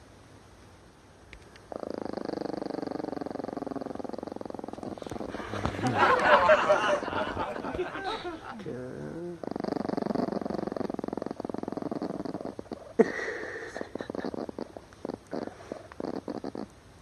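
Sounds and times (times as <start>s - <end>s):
small dog growling: 1.7s - 16.7s.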